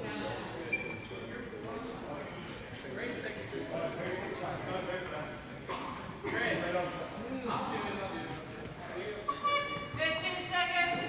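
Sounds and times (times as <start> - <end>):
indistinct voices in a gymnasium: 0.0 - 11.0.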